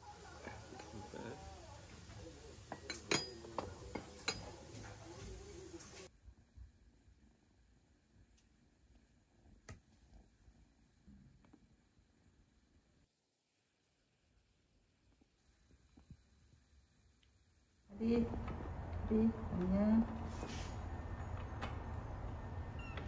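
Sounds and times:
faint voices: 0:00.0 - 0:06.1
dishes and cutlery clinking: 0:02.6 - 0:06.0.

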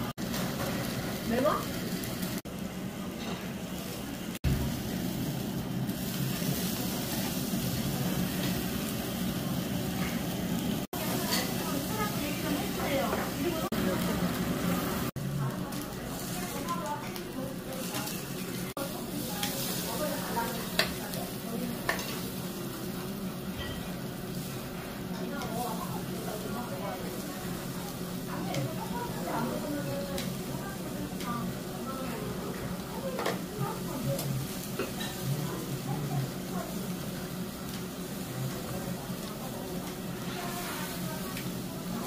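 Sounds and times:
meat sizzling on a grill: 0:00.0 - 0:42.0.

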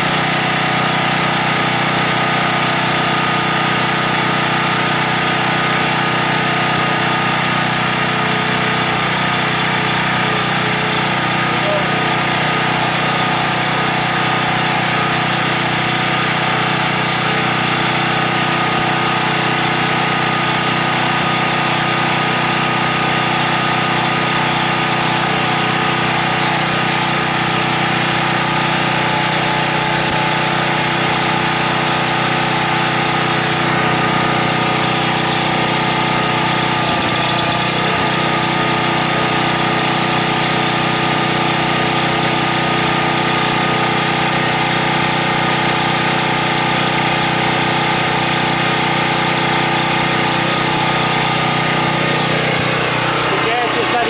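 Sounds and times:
generator engine running: 0:00.0 - 0:54.0.

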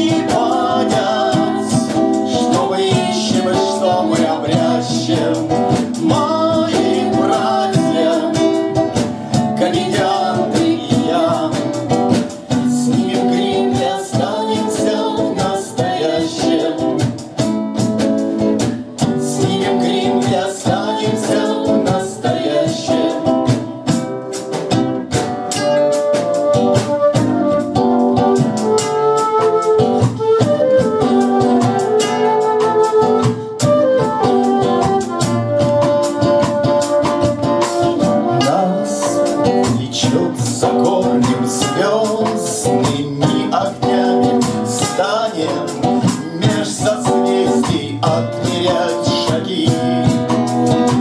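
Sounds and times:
man singing: 0:00.0 - 0:17.5, 0:18.7 - 0:23.9, 0:36.2 - 0:51.0
drum beat: 0:00.0 - 0:51.0
strummed acoustic guitar: 0:00.0 - 0:51.0.

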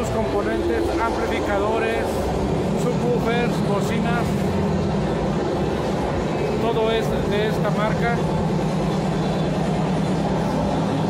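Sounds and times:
crowd din with low hum: 0:00.0 - 0:11.0.

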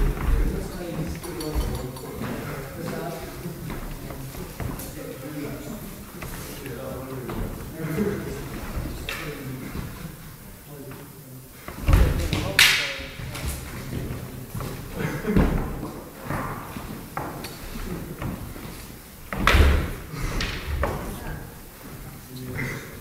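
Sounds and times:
murmur of voices: 0:00.0 - 0:23.0.

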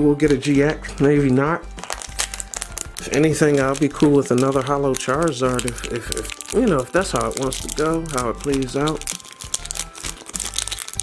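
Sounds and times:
foil wrapper crinkling and tearing: 0:01.7 - 0:11.0.

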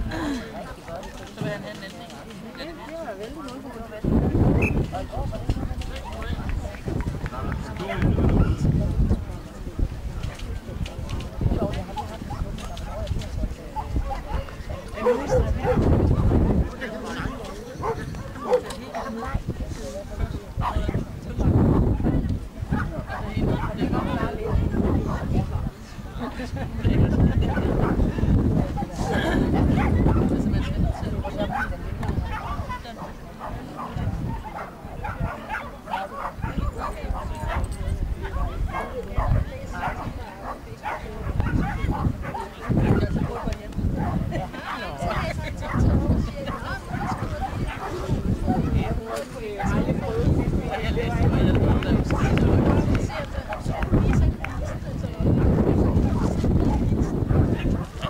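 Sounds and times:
people talking: 0:00.0 - 0:58.0
dog barking: 0:15.0 - 0:15.9, 0:31.5 - 0:44.9, 0:46.5 - 0:48.9.

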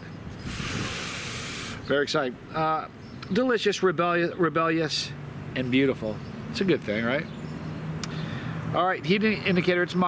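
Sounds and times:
sharp hiss: 0:00.4 - 0:01.9.

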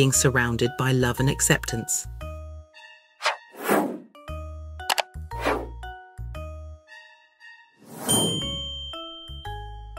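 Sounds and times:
background music: 0:00.0 - 0:09.9
bright high ding: 0:08.1 - 0:09.6
soft chime: 0:08.1 - 0:09.9.

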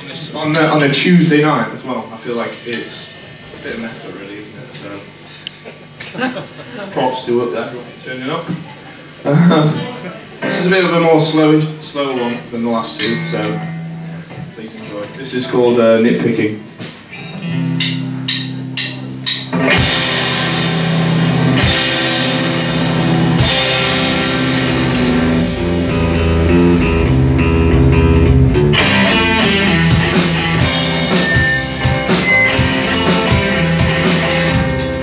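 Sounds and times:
electric guitars: 0:08.6 - 0:35.0
drum kit: 0:16.7 - 0:35.0.

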